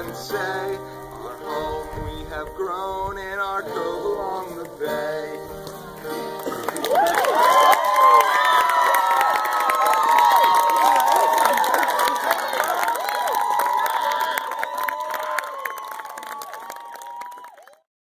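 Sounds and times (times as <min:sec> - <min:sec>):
crowd cheering and clapping: 0:05.7 - 0:17.9
high shouts and whoops: 0:06.8 - 0:17.8.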